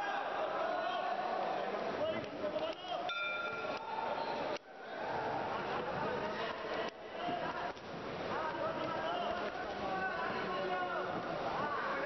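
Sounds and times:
arena crowd noise: 0.0 - 12.0
boxing bell ringing: 3.1 - 3.8.

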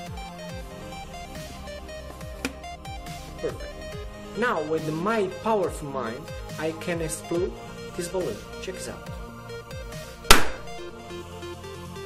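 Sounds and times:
background music: 0.0 - 12.0
balloon bursting: 10.3 - 10.9.

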